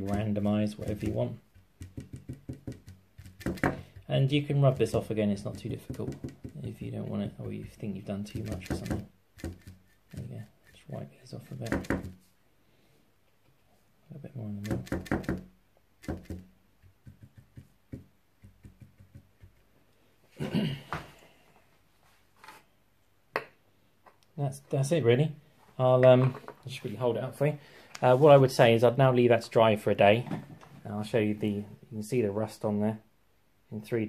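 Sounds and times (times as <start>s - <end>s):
brush tapping on metal plate: 16.0s - 19.7s.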